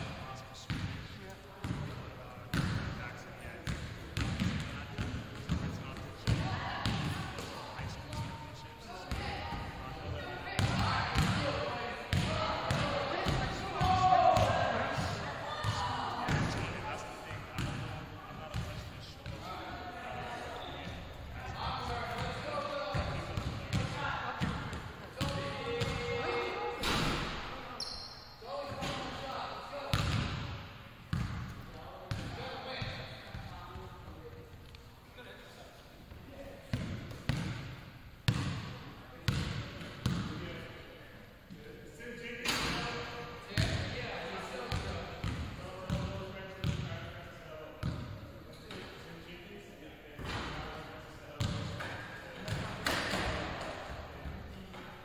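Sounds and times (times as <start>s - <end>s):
people talking: 0.0s - 27.8s
basketballs bouncing on wooden floor: 3.6s - 7.2s, 29.9s - 30.5s, 39.3s - 40.3s, 44.7s - 46.9s, 51.4s - 51.8s.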